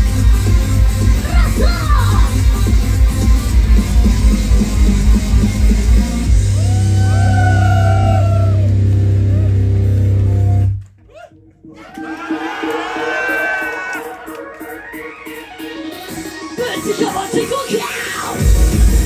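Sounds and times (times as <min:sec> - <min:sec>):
live pop-rock music: 0:00.0 - 0:10.6, 0:15.9 - 0:19.0.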